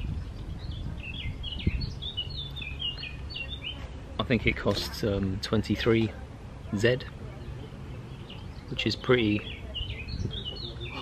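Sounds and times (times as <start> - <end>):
small bird chirping: 0.0 - 3.9, 6.6 - 11.0.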